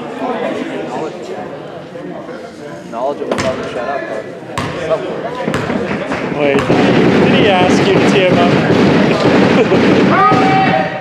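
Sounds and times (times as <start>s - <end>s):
crowd voices echoing: 0.0s - 11.0s
basketball bouncing on wooden floor: 5.5s - 10.5s.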